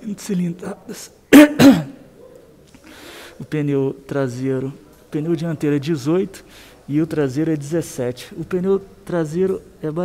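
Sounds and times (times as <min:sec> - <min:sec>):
man clearing his throat: 0:01.3 - 0:02.0.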